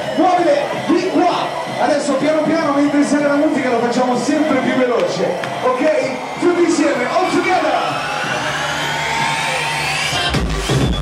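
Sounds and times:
noise wash: 0.0s - 10.4s
rising synth sweep: 0.0s - 11.0s.

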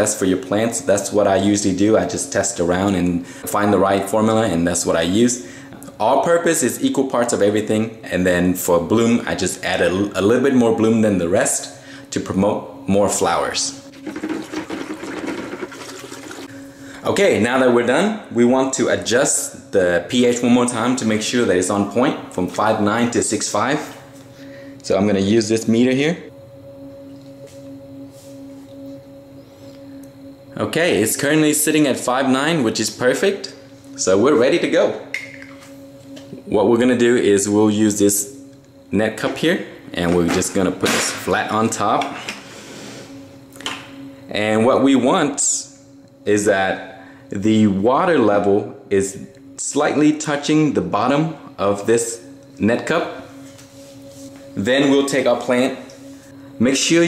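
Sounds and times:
faint steady hum: 0.0s - 57.0s
water sloshing in plastic bucket: 14.0s - 16.4s.

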